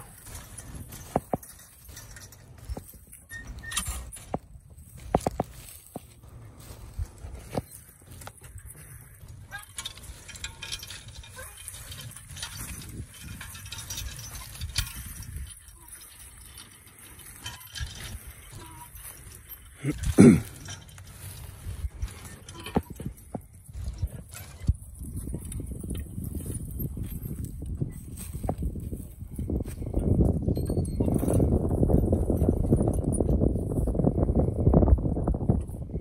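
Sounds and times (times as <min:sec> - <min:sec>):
harness chains clinking: 0:00.0 - 0:34.6
hoof steps on soft ground: 0:04.2 - 0:34.8.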